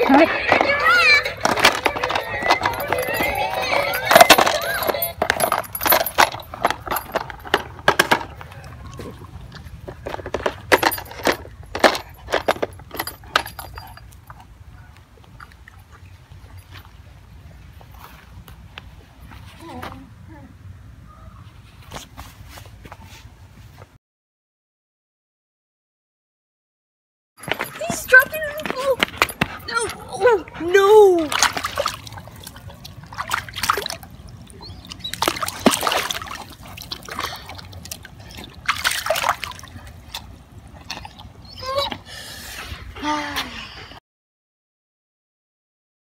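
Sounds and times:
plastic toy clattering: 1.4 - 8.4
person calling out: 29.7 - 31.4
pool water splashing: 29.7 - 41.8.

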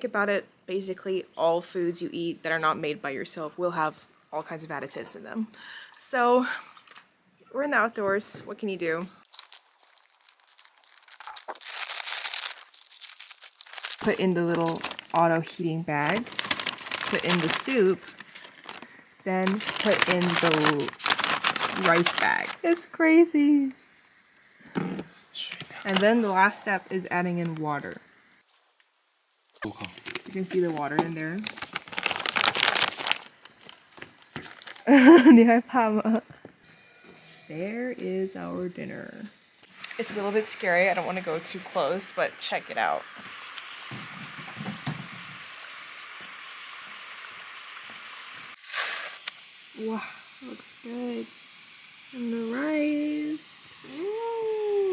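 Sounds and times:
plastic packaging crinkling: 9.2 - 22.8, 25.5 - 26.5, 29.6 - 35.3.

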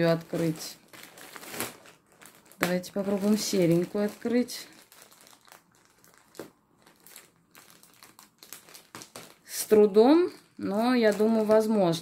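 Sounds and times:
plastic bag crinkling: 0.0 - 12.0.

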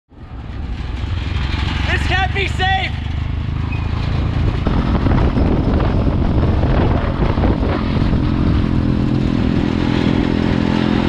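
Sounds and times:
road noise: 0.1 - 11.0
man speaking: 1.9 - 3.1
motorcycle engine running: 3.0 - 11.0.

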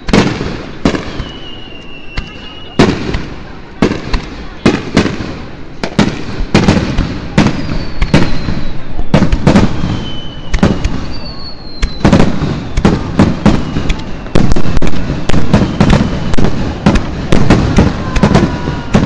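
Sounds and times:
fireworks bursting bangs: 0.0 - 19.0
fireworks whistles: 0.0 - 19.0.

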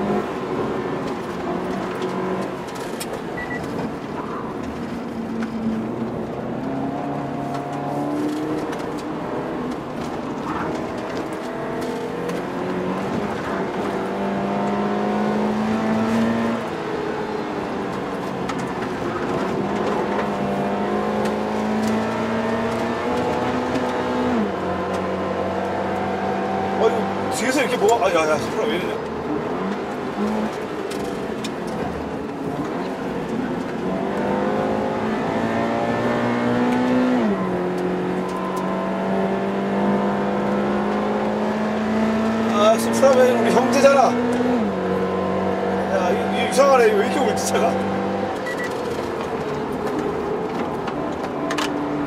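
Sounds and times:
automatic gearbox shifting: 0.0 - 52.0
car engine revving in cabin: 0.0 - 52.0.

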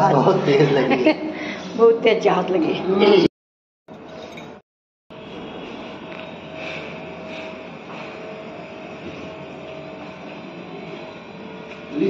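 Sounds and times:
mechanical drone: 5.1 - 12.0
mid-pitched machine whine: 5.1 - 12.0.

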